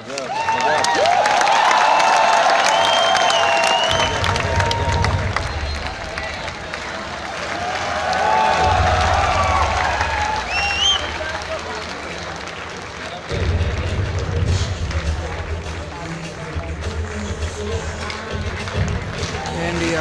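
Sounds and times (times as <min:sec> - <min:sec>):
audience applauding and cheering: 0:00.0 - 0:20.0.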